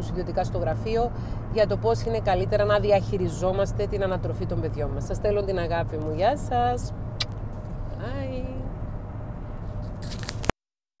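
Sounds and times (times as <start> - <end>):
car drone from inside cabin: 0.0 - 10.5
rustling microphone handling: 9.6 - 10.5.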